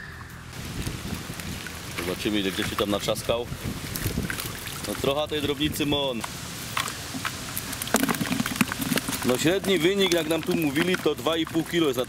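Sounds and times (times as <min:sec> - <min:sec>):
water splashing off a net: 0:00.6 - 0:05.2, 0:06.3 - 0:12.0.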